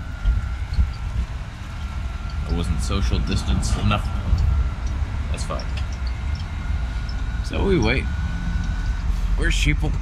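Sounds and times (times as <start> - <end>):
wind buffeting microphone: 0.0 - 8.0
faint steady high tone: 0.0 - 10.0.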